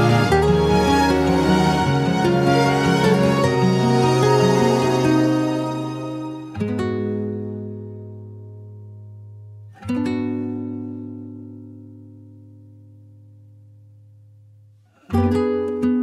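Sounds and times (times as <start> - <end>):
instrumental pop ballad backing: 0.0 - 7.8.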